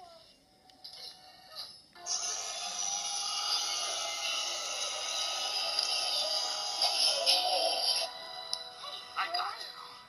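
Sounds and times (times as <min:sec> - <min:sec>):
hissy film soundtrack: 0:00.0 - 0:10.0.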